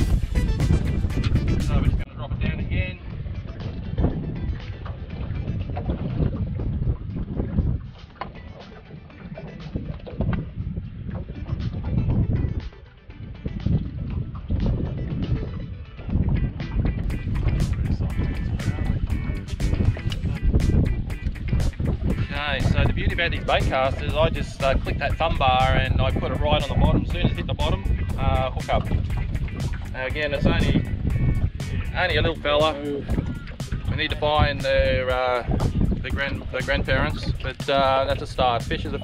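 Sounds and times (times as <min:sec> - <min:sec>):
background music: 0:00.0 - 0:39.0
wind buffeting microphone: 0:00.0 - 0:39.0.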